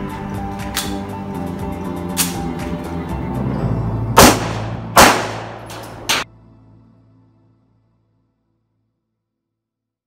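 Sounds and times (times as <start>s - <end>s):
background music: 0.0s - 8.7s
handgun shots: 0.7s - 1.0s, 4.2s - 6.2s.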